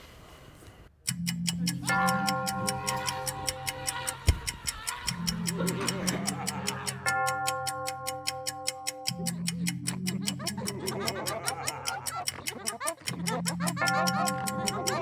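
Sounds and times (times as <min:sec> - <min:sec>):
pocket watch ticking: 0:01.0 - 0:15.0
droning horror music: 0:01.1 - 0:04.3, 0:05.1 - 0:15.0.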